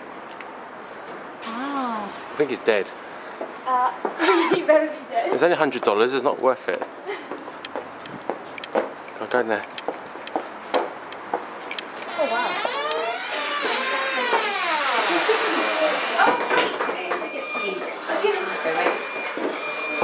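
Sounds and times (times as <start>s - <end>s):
chatter of people talking: 12.2s - 20.0s.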